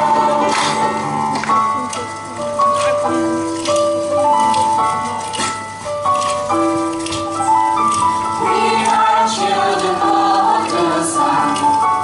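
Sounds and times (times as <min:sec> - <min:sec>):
children's choir singing: 0:00.0 - 0:01.3, 0:08.4 - 0:12.0.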